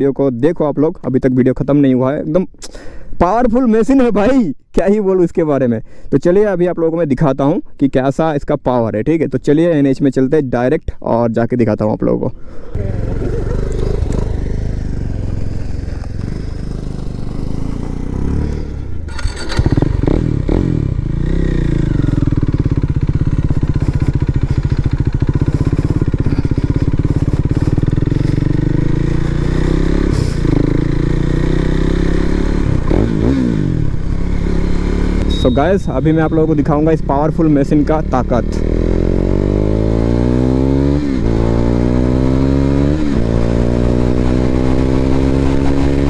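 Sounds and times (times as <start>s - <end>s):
motorcycle engine running: 12.7s - 46.0s.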